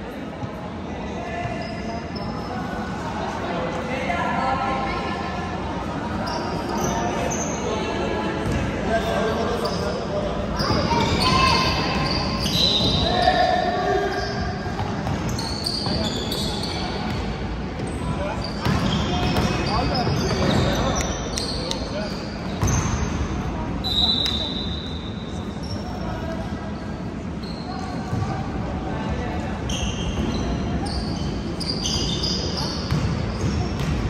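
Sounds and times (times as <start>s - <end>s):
shoe squeaks: 1.2s - 2.8s, 6.2s - 7.7s, 8.4s - 28.4s, 29.6s - 33.9s.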